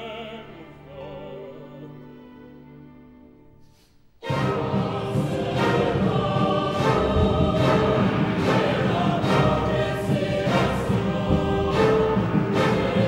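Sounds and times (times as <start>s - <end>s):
choir singing: 0.0s - 2.4s, 4.2s - 13.0s
orchestra playing: 4.2s - 13.0s.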